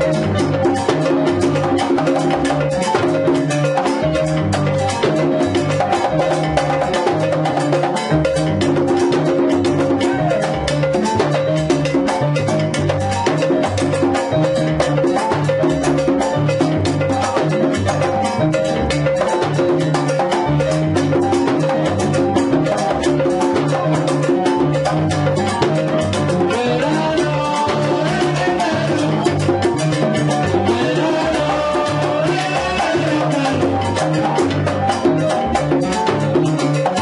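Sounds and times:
conga drum struck by hand: 0.0s - 37.0s
salsa band playing: 0.0s - 37.0s.

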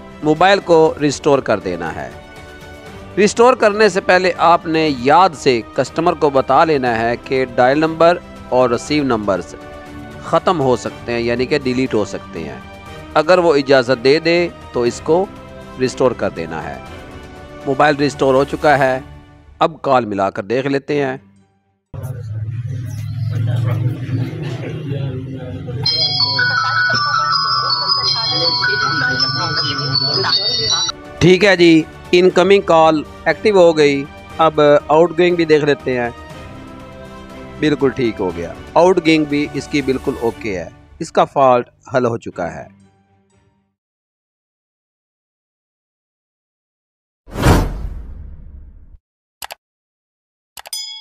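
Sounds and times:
background music: 0.0s - 43.8s
low rumble: 22.0s - 25.9s
phone ringtone melody: 25.8s - 30.9s.

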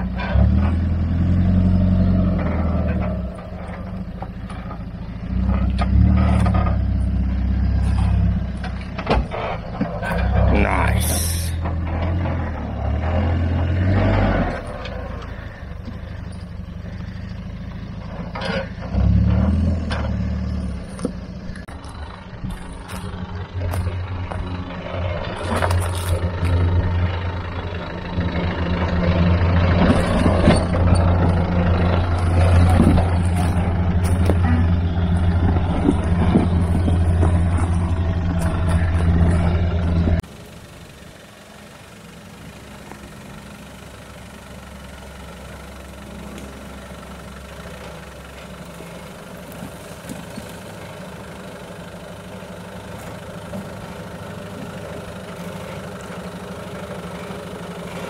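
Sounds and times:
diesel engine revving: 0.0s - 58.0s.

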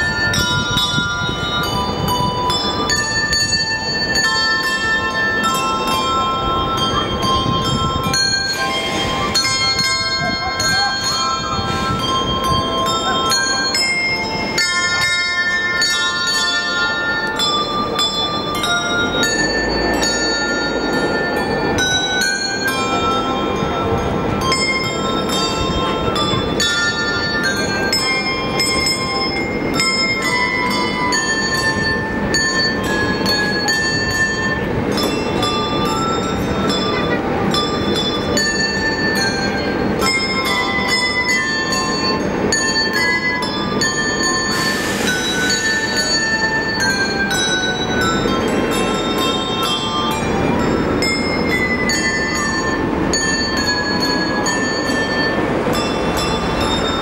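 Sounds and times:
handbell ensemble playing: 0.0s - 57.0s.

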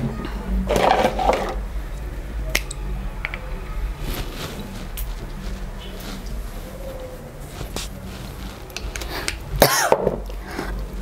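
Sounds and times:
short rustle: 4.0s - 8.7s.

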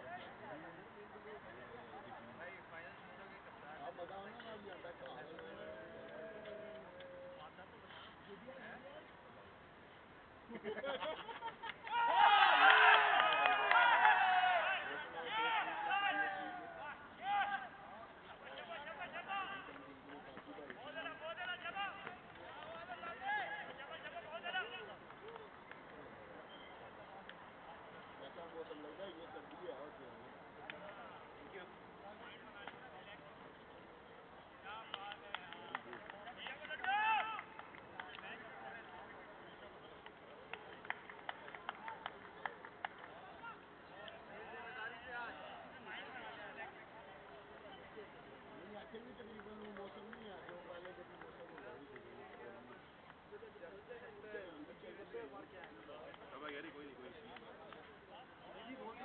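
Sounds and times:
sharp claps: 4.2s - 7.1s, 11.6s - 14.4s, 19.5s - 23.1s, 24.8s - 26.1s, 30.6s - 31.0s, 34.8s - 38.6s, 40.0s - 44.2s, 49.1s - 53.2s
players shouting and calling: 11.0s - 25.5s, 30.5s - 40.4s, 41.8s - 52.7s.

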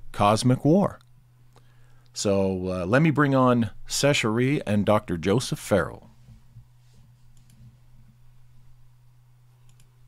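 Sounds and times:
steady low hum: 0.0s - 10.0s
faint clicks: 9.6s - 9.9s.

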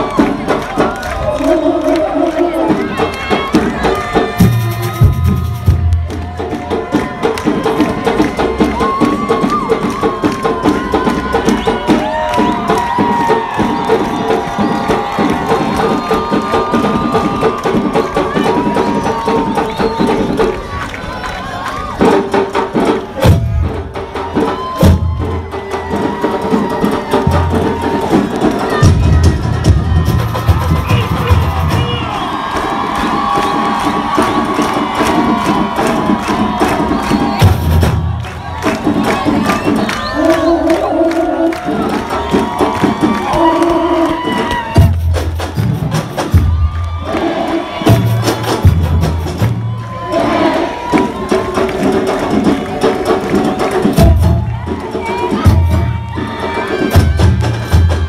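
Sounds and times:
samba drums playing: 0.0s - 20.8s, 21.8s - 58.0s
crowd cheering: 0.0s - 58.0s
deep bass drums: 2.7s - 7.2s.

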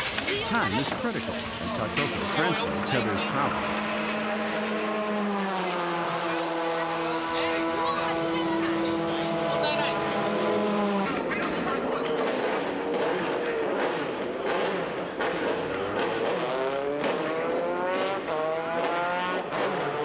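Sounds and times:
race car engine revving: 0.0s - 20.0s.

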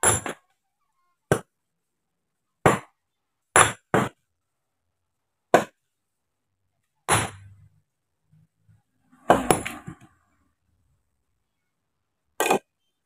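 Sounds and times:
sledgehammer striking stone: 0.0s - 0.4s, 2.6s - 3.0s, 3.6s - 4.2s, 5.5s - 5.8s, 7.1s - 7.5s, 9.2s - 10.0s.

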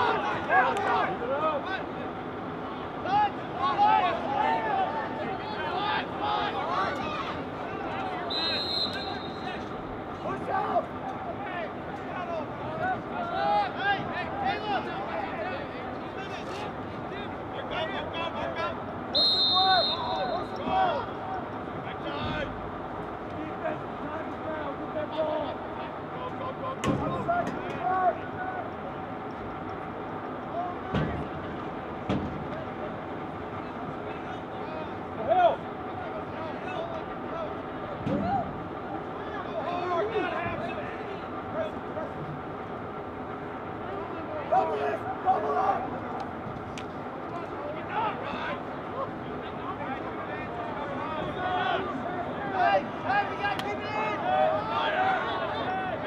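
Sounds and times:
people shouting: 0.0s - 1.9s, 3.0s - 9.7s, 44.4s - 46.1s
referee's whistle: 8.2s - 9.7s, 19.1s - 20.7s.

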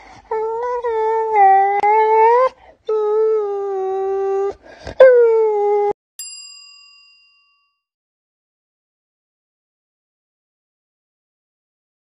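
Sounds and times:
notification bell ding: 6.2s - 7.8s.

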